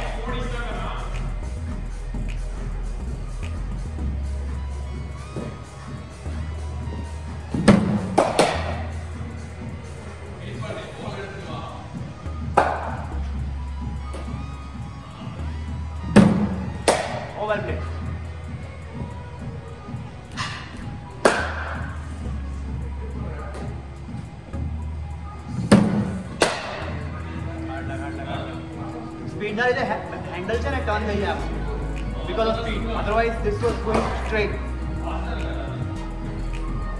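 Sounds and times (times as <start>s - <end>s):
background music with bass: 0.0s - 36.9s
bat striking cricket ball: 12.6s - 12.9s, 16.2s - 17.3s.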